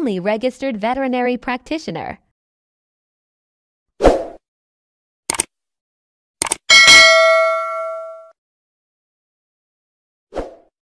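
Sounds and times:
bright bell chime: 6.7 - 8.3.

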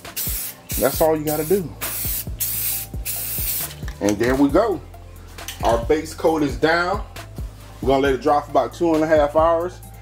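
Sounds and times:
spray paint can hissing: 0.0 - 3.8.

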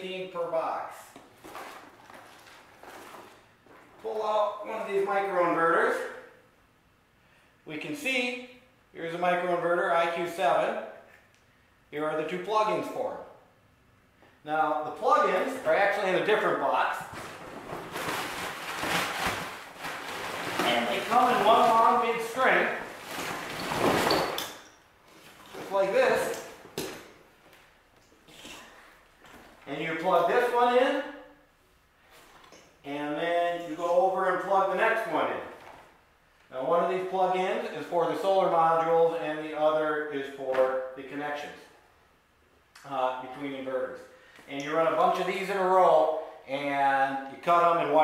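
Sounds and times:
cardboard box rustling: 1.4 - 3.4, 17.1 - 22.0.

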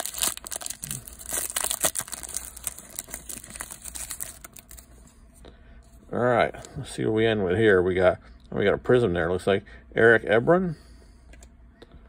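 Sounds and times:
foil wrapper crinkling and tearing: 0.0 - 4.9.

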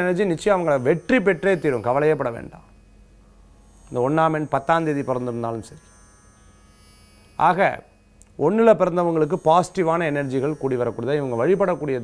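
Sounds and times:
faint electrical hum and buzz: 0.0 - 12.0.

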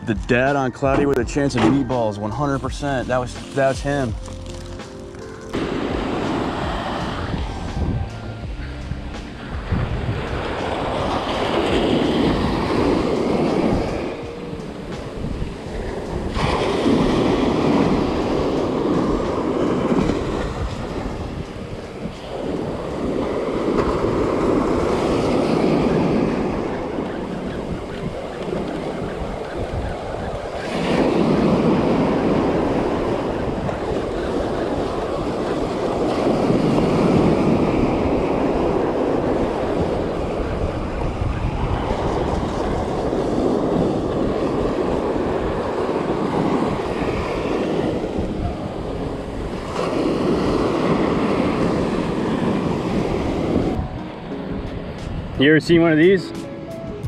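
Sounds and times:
small waves breaking on beach: 2.3 - 7.9, 9.3 - 56.6
wind on microphone: 3.0 - 57.0.

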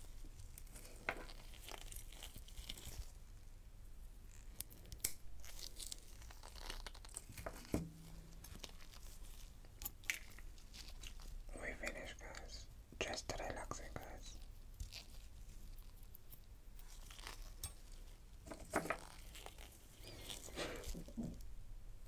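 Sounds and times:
eggshell cracking and clicking: 9.8 - 11.2
quiet voice: 11.5 - 14.4.

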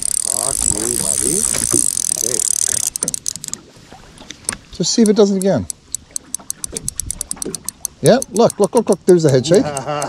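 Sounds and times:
fishing reel whirring and ticking: 0.0 - 3.6, 4.9 - 10.0
reel clicks: 0.0 - 3.6, 4.2 - 10.0.

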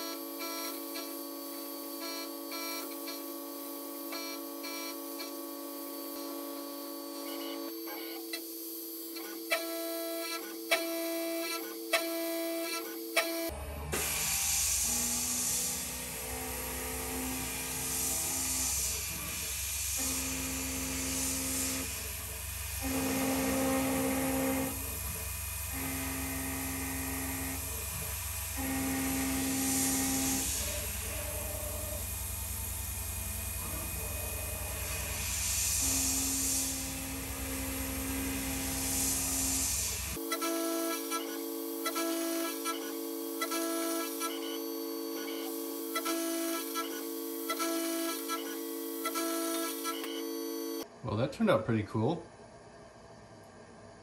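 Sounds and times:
milling machine cutting metal: 0.0 - 50.8
motor hum: 0.0 - 50.8
coolant mist hiss: 14.0 - 40.2.

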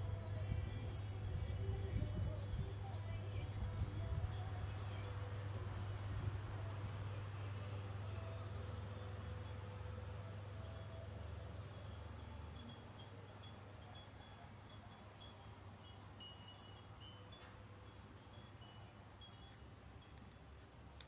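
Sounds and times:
chimes tinkling: 0.0 - 21.0
low steady hum: 0.0 - 21.0.

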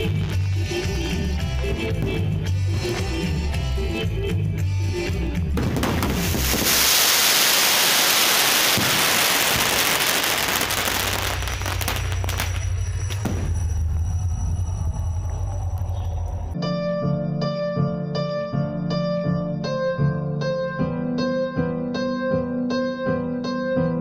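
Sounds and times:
music with bass line: 0.0 - 6.3
fireworks crackling: 5.6 - 14.0.

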